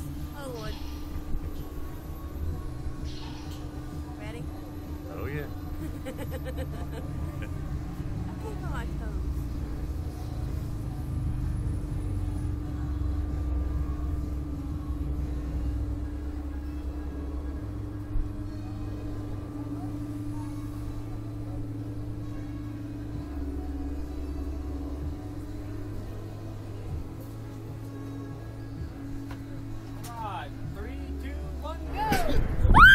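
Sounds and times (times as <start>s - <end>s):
constant hum: 0.0s - 32.9s
low mechanical rumble: 0.0s - 32.9s.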